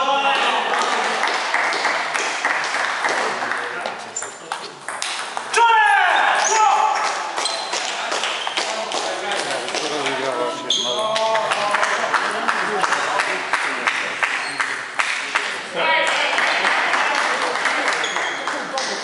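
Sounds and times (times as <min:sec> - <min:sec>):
voices in large hall: 0:00.0 - 0:19.0.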